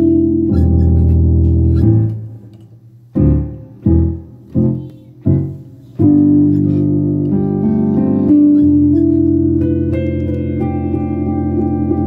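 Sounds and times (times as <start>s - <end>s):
piano playing chords: 0.0s - 12.0s.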